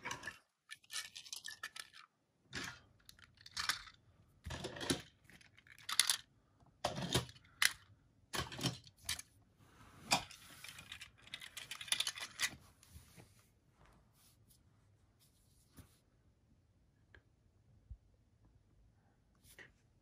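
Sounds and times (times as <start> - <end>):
plastic toys clicking and rustling: 0.0 - 9.4, 10.1 - 12.6.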